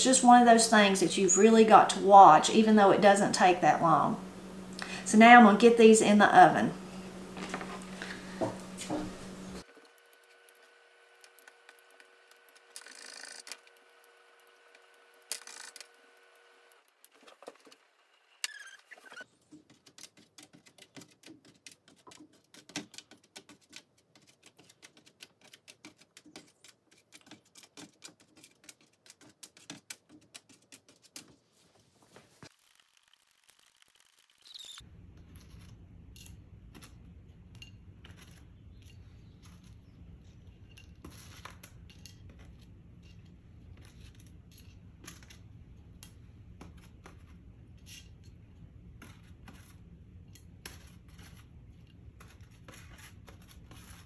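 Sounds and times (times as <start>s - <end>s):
steady low hum: 0.0s - 9.7s.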